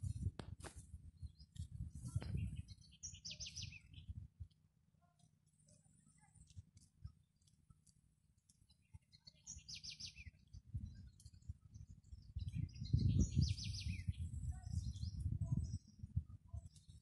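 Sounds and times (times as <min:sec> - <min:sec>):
birds chirping: 0:01.0 - 0:17.0.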